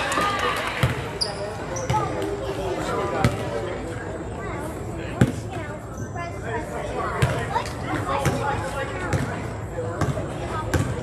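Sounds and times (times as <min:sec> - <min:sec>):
basketball bouncing: 0:10.0 - 0:11.0.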